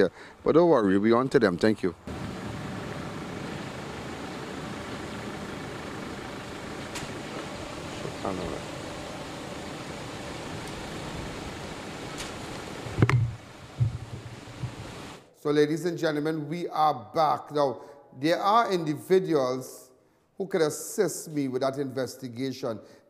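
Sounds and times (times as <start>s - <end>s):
distant voices: 2.1s - 12.8s
background rush: 2.1s - 15.3s
sharp low thump: 13.0s - 14.8s.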